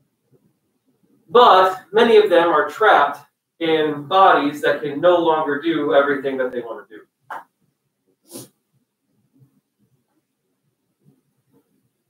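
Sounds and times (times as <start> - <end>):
person's sharp breath: 8.2 - 8.5.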